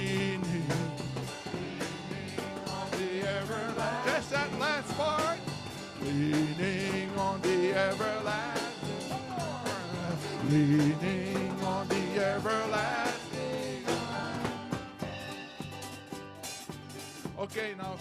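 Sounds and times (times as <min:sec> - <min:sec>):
band playing country-style hymn: 0:00.0 - 0:18.0
drum kit: 0:00.0 - 0:18.0
guitars: 0:00.0 - 0:18.0.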